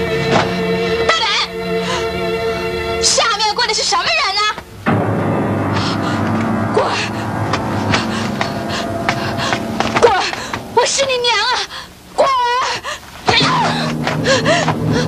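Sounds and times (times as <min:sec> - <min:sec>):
dramatic background music: 0:00.0 - 0:03.6, 0:04.8 - 0:12.1, 0:13.4 - 0:15.0.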